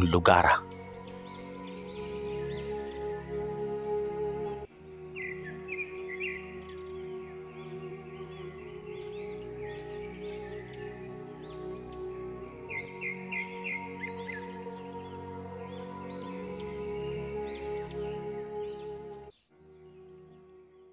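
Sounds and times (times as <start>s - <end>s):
bird chirps: 0.0s - 3.3s
layered ambient music: 0.0s - 20.8s.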